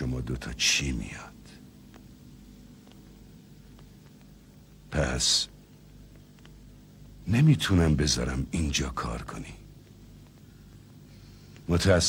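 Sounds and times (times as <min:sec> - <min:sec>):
man speaking: 0:00.0 - 0:01.6, 0:04.9 - 0:05.6, 0:07.2 - 0:09.7, 0:11.6 - 0:12.0
faint steady low hum: 0:00.0 - 0:12.0
soft ticks: 0:01.5 - 0:04.8, 0:05.5 - 0:07.2, 0:09.7 - 0:11.7.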